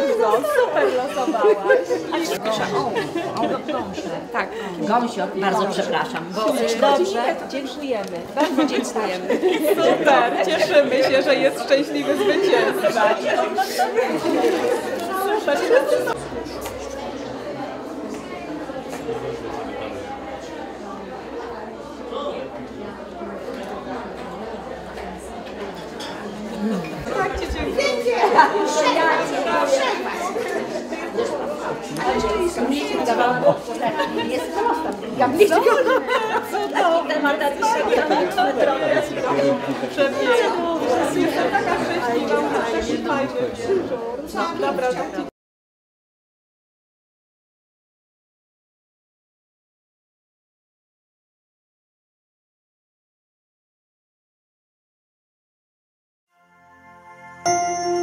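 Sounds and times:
overlapping chatter of people: 0.0s - 45.3s, 57.0s - 58.0s.

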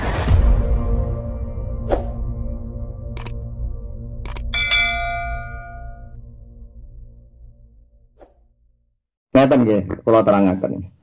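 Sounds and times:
bright bell ding: 4.6s - 6.2s.

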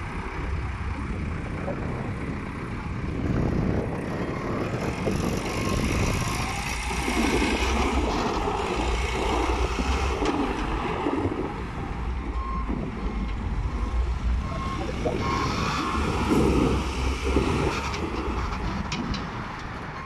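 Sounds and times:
diesel engine running: 0.0s - 20.0s.

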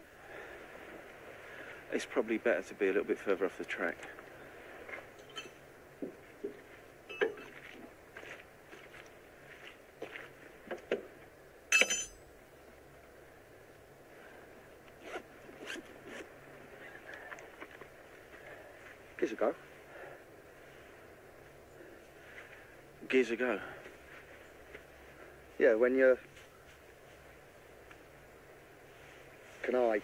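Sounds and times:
light footsteps on forest floor: 5.9s - 11.4s, 17.0s - 30.0s
rustling on forest floor: 23.6s - 30.0s.

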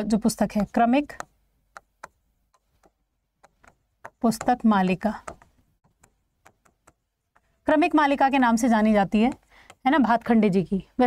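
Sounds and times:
stylus tapping on screen: 0.7s - 10.6s.

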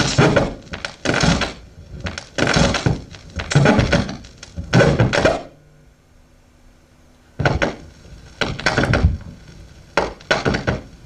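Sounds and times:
vinyl record scratching: 0.0s - 5.4s.

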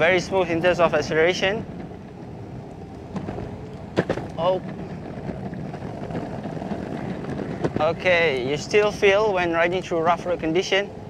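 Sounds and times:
wheels knocking over grooves: 0.0s - 10.7s
skateboard wheels rumbling on concrete: 0.0s - 11.0s.

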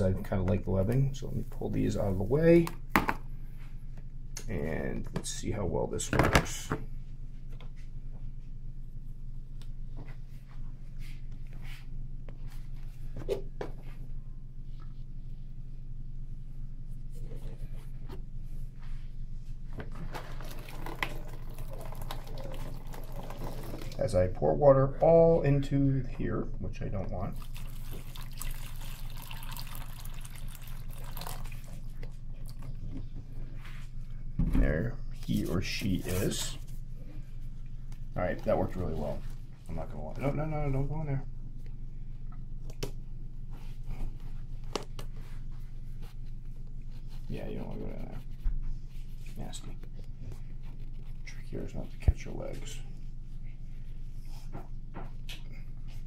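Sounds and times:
steady low hum: 0.0s - 56.0s
water pouring from bottle: 20.3s - 24.0s, 27.3s - 32.6s.

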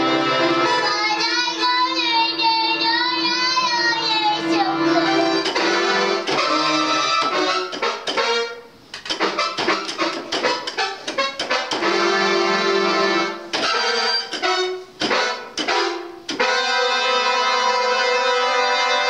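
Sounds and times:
electronic keyboard played: 0.0s - 19.0s.

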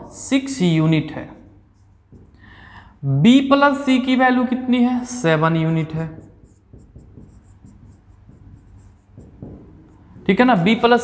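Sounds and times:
marker writing on whiteboard: 0.4s - 2.5s, 5.3s - 11.0s.

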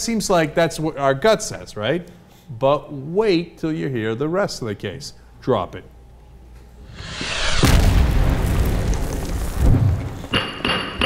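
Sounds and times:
low swell: 6.8s - 8.8s
deep loud boom: 6.9s - 10.2s.

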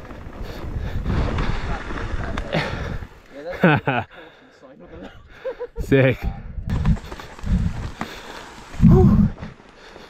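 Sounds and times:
bike tyres rushing on gravel: 0.0s - 3.4s, 6.7s - 10.0s
bike rattling: 0.0s - 3.9s, 6.7s - 10.0s.

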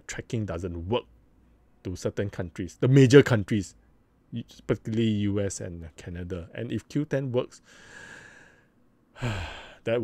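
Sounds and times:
faint breath: 7.6s - 9.8s
man sighing: 9.1s - 9.8s.

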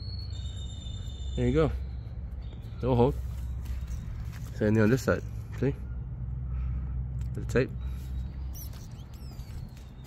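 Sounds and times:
high chirps and squeaks: 0.0s - 5.2s, 7.8s - 10.0s
low steady rumble: 0.0s - 9.8s.

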